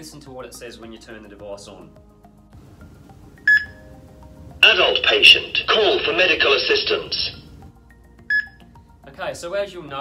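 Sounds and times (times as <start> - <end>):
high-pitched electronic beep: 3.5 - 3.8, 8.3 - 8.6.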